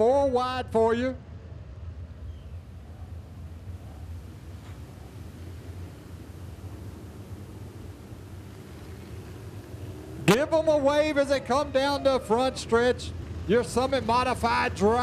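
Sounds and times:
race car engines droning: 0.0 - 15.0.

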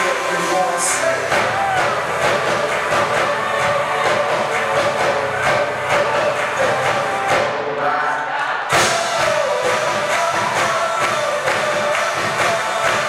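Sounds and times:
steady drum beat: 0.0 - 7.6, 8.7 - 13.0
live band playing dance music: 0.0 - 13.0.

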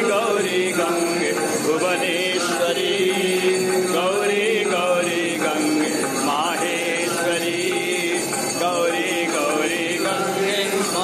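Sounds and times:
voices singing a devotional chant: 0.0 - 11.0.

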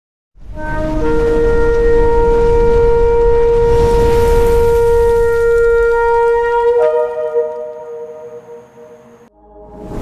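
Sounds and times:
shofar blast: 0.5 - 9.1.

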